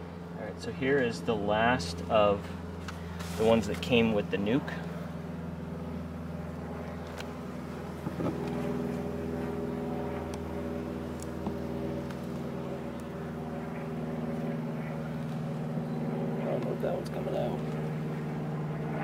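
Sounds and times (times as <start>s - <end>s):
bees humming: 7.3s - 16.4s.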